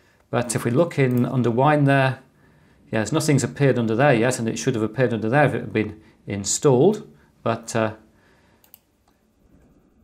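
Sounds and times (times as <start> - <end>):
computer mouse click: 8.6 - 9.2.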